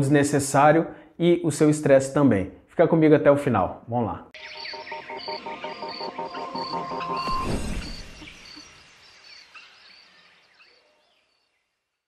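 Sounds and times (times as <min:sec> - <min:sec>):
faint bird chirps: 0:04.4 - 0:12.0
nature ambience: 0:04.4 - 0:12.0.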